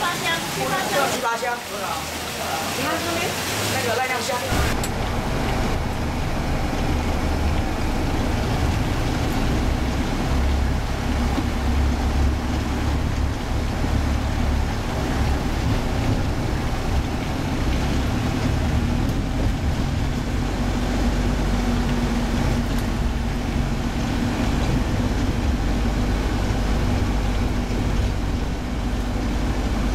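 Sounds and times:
road noise: 0.0s - 29.9s
surrounding traffic: 0.0s - 29.9s
vehicle engine rumble: 4.4s - 29.9s.

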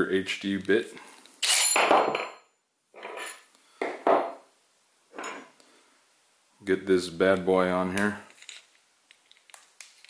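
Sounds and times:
tools knocking on workbench: 3.8s - 4.4s.

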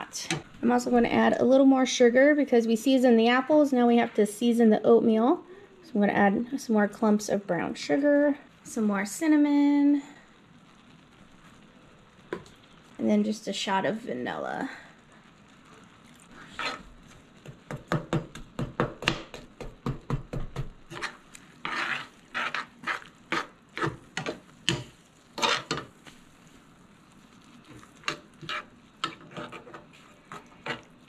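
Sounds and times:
metal spoon scraping a pan: 16.3s - 17.0s, 20.9s - 26.2s, 27.6s - 31.0s.

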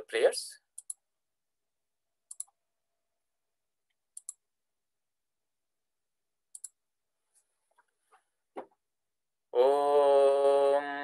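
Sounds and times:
computer mouse clicks: 0.8s - 1.0s, 2.3s - 2.6s, 4.2s - 4.4s, 6.5s - 6.8s.

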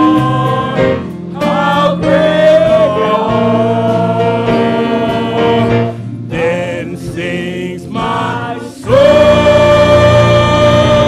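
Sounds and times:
gospel choir singing: 0.0s - 11.0s.

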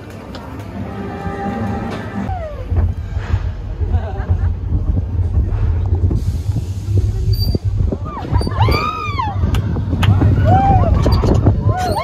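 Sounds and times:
roller coaster rumbling: 0.0s - 12.0s.

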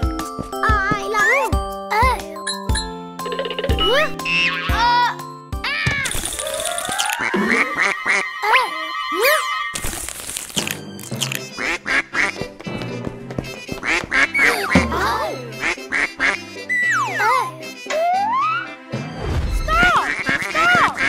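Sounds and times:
light background music: 0.0s - 7.6s, 10.6s - 21.0s.

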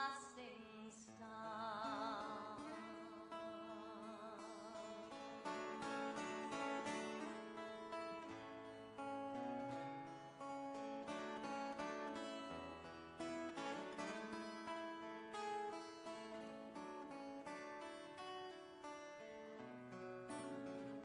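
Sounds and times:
acoustic guitar picking: 1.2s - 21.0s.

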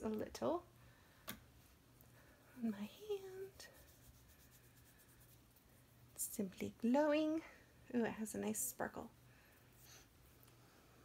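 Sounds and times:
hands rubbing oil on skin: 3.4s - 5.8s.

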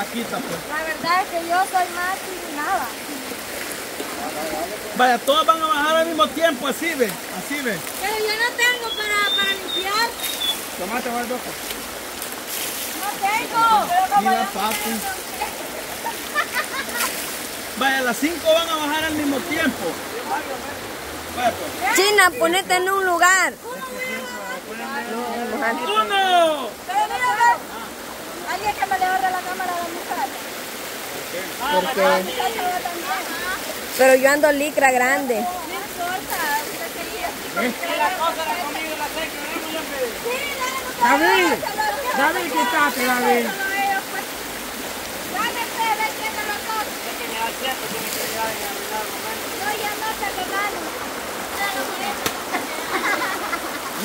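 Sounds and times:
people chattering: 0.0s - 11.3s, 18.4s - 30.6s, 31.3s - 54.0s
shallow river water running: 0.0s - 54.0s
splashes of people wading: 0.0s - 54.0s
women talking: 8.0s - 10.2s, 21.8s - 24.6s, 32.2s - 37.6s, 40.2s - 44.3s.

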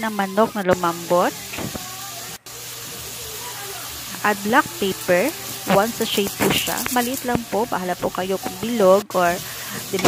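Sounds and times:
chicken sizzling in a pot: 0.0s - 10.0s.

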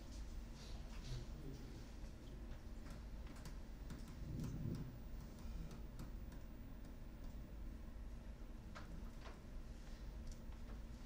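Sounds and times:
low steady hum: 0.0s - 11.0s
faint clicks and ticks: 2.2s - 7.7s, 8.7s - 11.0s.

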